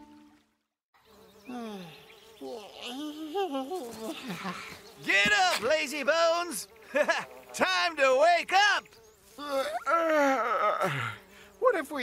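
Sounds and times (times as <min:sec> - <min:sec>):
buzzing insect: 0:01.0 - 0:12.0.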